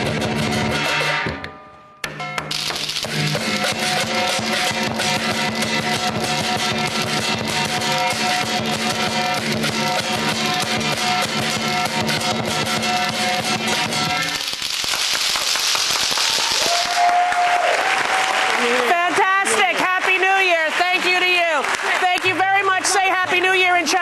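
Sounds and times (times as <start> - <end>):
drum: 0.0 - 1.4, 2.1 - 16.8
crashing cymbals: 2.6 - 16.6
applause and cheering: 13.7 - 24.0
person speaking: 18.6 - 24.0.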